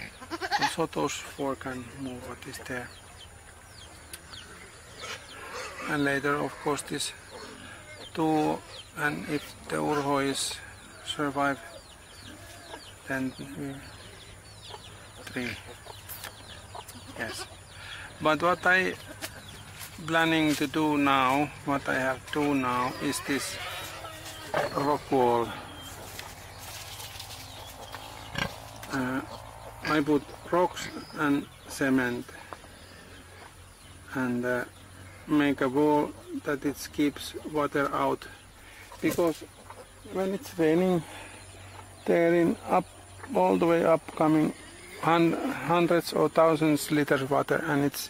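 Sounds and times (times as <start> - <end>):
pig grunting: 4.6 - 8.0, 28.1 - 31.4.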